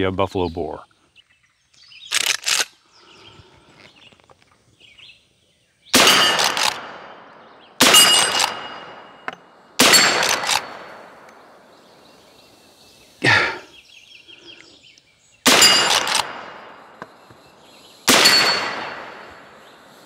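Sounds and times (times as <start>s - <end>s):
gunshots: 5.9s - 11.3s, 15.4s - 17.1s, 18.0s - 19.6s
bullet ringing on steel plate: 6.0s - 6.6s, 7.8s - 10.7s, 15.5s - 16.8s, 18.1s - 19.3s.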